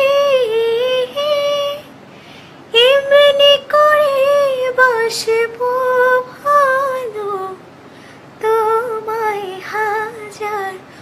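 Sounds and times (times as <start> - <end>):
woman singing unaccompanied: 0.0 - 1.9, 2.7 - 7.6, 8.4 - 11.0.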